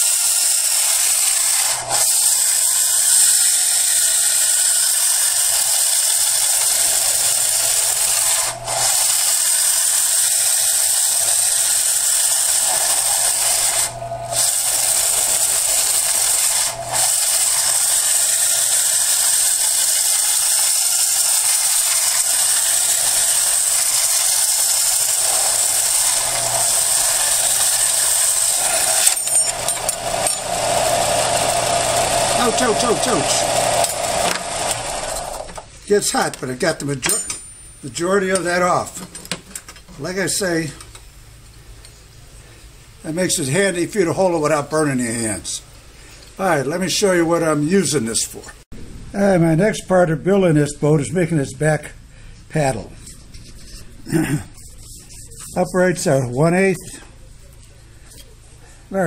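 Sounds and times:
belt sander grinding metal: 0.0s - 36.3s.

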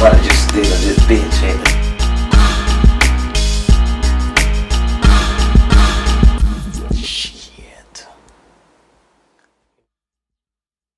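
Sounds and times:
man whispering: 6.9s - 8.6s.

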